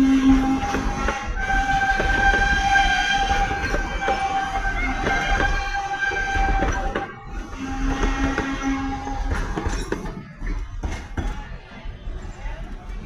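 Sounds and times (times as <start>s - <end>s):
low train rumble: 0.0s - 13.0s
train wheels clicking on track: 0.0s - 13.0s.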